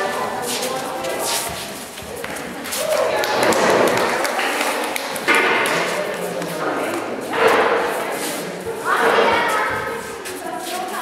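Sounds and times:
people's voices in echoing hall: 0:00.0 - 0:11.0.

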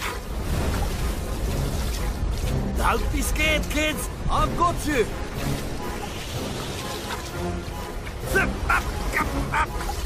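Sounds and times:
cartoon rushing sea water: 0:00.0 - 0:10.0.

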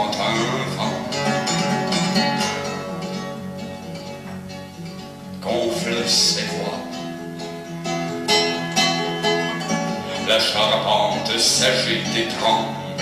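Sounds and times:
classical guitar fingerstyle: 0:00.0 - 0:13.0.

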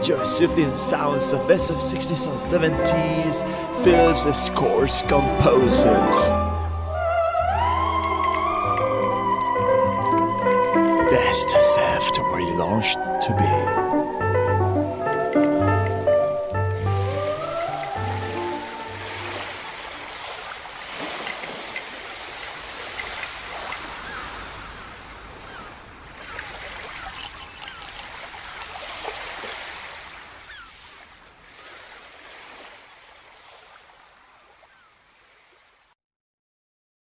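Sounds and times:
lounge music jingle: 0:00.0 - 0:06.7, 0:07.6 - 0:19.8
running water gurgling: 0:07.8 - 0:34.7.

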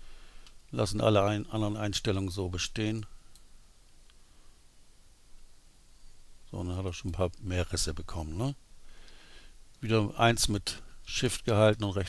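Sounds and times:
room hiss: 0:00.0 - 0:12.0
faint tick: 0:00.4 - 0:00.7, 0:09.0 - 0:09.8.

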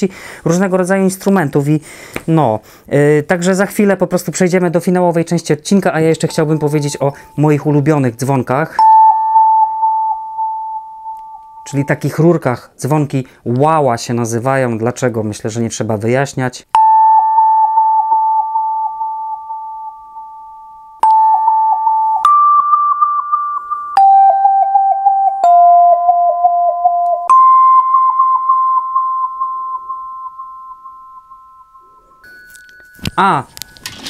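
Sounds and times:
tuned metal tubes struck with mallet: 0:08.8 - 0:11.9, 0:16.8 - 0:18.8, 0:21.0 - 0:34.0.

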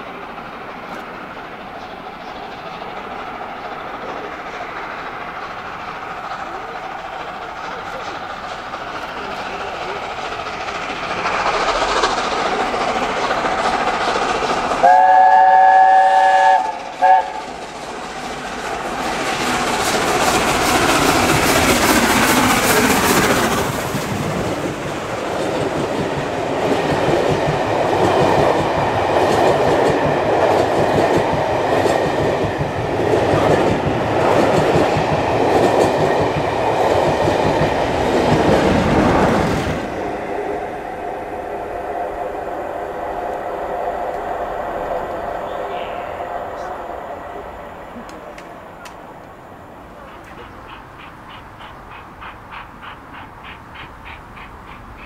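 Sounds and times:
coaches clattering over rails: 0:00.0 - 0:15.5, 0:16.6 - 0:40.4, 0:47.6 - 0:55.0
steam locomotive working hard: 0:00.0 - 0:55.0
steam locomotive chime whistle: 0:14.8 - 0:17.4.

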